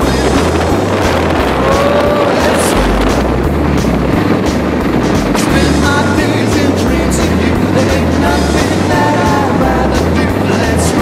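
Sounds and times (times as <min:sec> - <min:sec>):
drum strikes: 0:00.0 - 0:10.8
bass line: 0:00.0 - 0:11.0.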